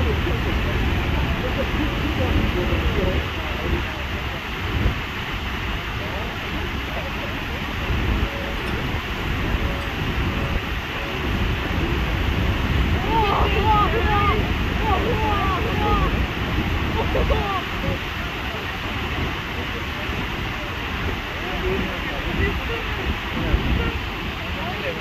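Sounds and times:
waterfall roaring: 0.0s - 25.0s
wind on microphone: 0.0s - 25.0s
people calling out: 12.9s - 17.8s.

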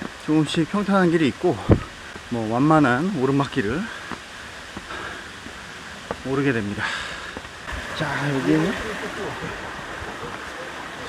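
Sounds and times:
running water: 0.0s - 11.0s.

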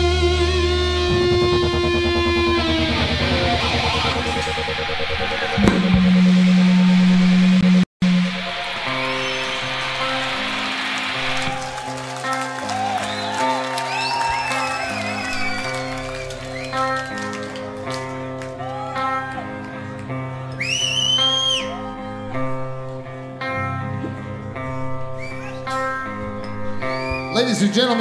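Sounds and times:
live rock band: 0.0s - 4.7s
wavering high guitar lines: 0.0s - 27.6s
loud held low note: 0.2s - 10.0s.

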